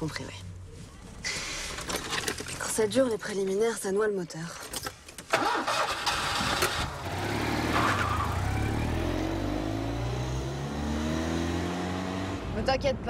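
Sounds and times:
small car engine revving: 5.4 - 12.5.

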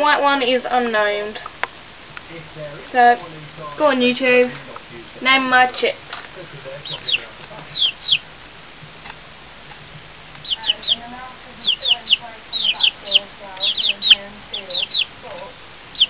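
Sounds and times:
chicks peeping: 0.1 - 16.0
soft low chirps: 6.3 - 16.0.

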